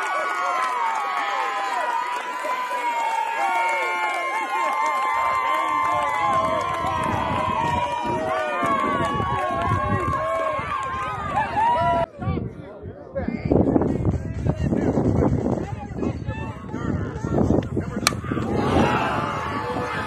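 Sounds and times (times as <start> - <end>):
crowd yelling and cheering: 0.0 - 12.1, 18.0 - 20.0.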